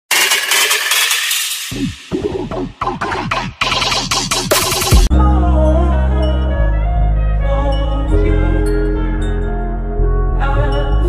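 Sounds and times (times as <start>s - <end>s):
music with falling low tone: 1.7s - 11.0s.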